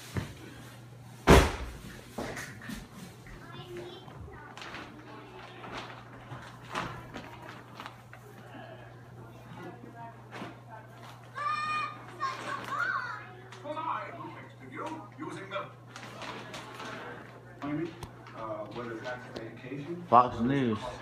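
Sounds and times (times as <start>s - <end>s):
child calling out: 11.4s - 13.4s.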